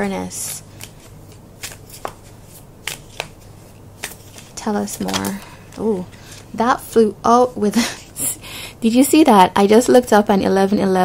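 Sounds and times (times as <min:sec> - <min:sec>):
cards being shuffled: 0:00.2 - 0:06.6
sharp card clicks: 0:00.8 - 0:03.4, 0:04.0 - 0:05.8.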